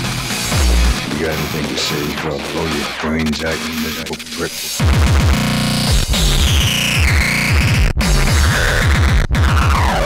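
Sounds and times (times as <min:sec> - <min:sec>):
fast distorted kick drums: 0:00.0 - 0:10.0.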